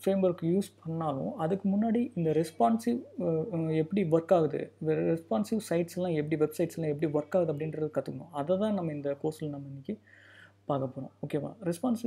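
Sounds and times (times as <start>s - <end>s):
man talking: 0.0s - 10.0s, 10.7s - 12.0s
faint low hum: 0.0s - 12.0s
person speaking: 0.0s - 12.0s.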